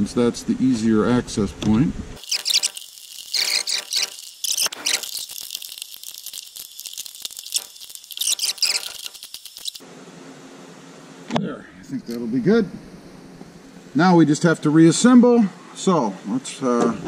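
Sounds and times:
small screw clicking and squeaking: 2.2 - 9.8.

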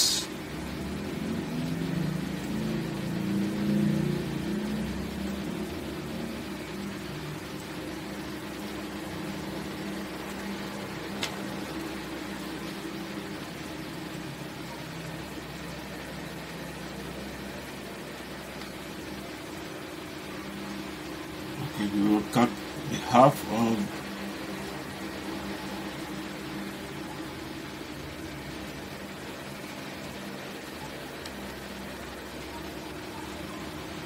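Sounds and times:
background hiss: 0.0 - 34.0.

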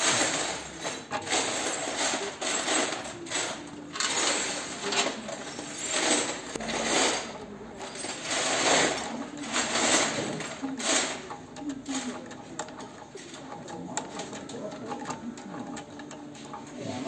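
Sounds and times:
hand tool working a bolt: 0.0 - 17.0
metal clinking and scraping: 0.0 - 17.0.

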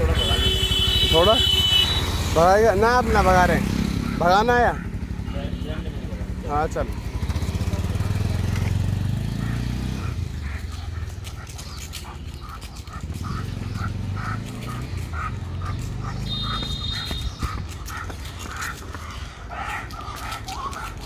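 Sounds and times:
motorcycle engine rumble: 0.0 - 21.0
footsteps on asphalt: 10.4 - 21.0.

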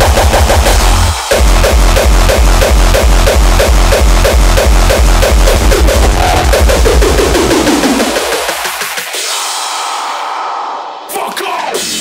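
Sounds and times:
heavy kick drum pounding: 0.0 - 8.9
synths: 0.0 - 10.6.

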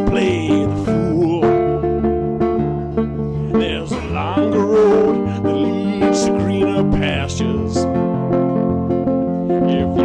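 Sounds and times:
man singing: 0.0 - 8.4, 9.4 - 10.0
acoustic guitar chords: 0.0 - 10.0.

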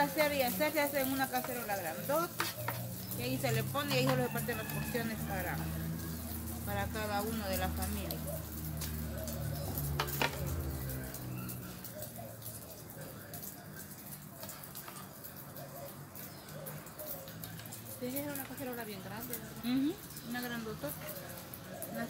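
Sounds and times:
food sizzling in a pan: 0.0 - 12.2
birds calling: 0.0 - 22.0.

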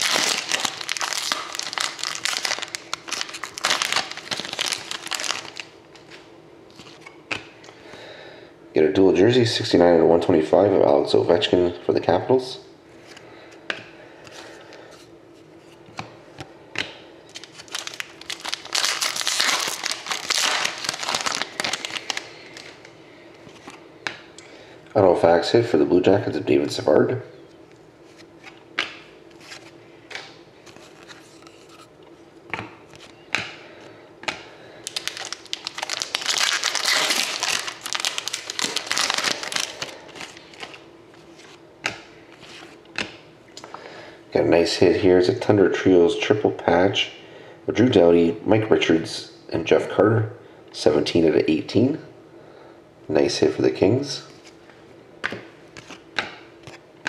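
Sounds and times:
foil pack tearing: 0.0 - 5.7, 17.3 - 22.8, 34.8 - 40.8
foil crinkling: 0.0 - 6.2, 17.3 - 22.9, 34.8 - 41.6
cards being flipped through: 28.0 - 31.9, 55.2 - 56.8.

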